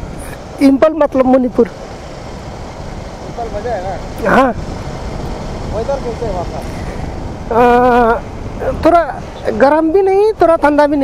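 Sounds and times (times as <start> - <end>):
motorcycle wind and road noise: 0.0 - 11.0.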